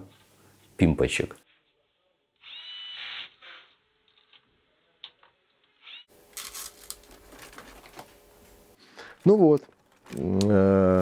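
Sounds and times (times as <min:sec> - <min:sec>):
electric screwdriver whine: 0:02.4 - 0:03.7.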